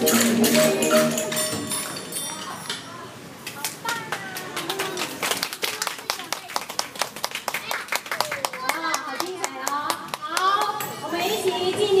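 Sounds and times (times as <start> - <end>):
audience applauding: 3.6 - 10.2.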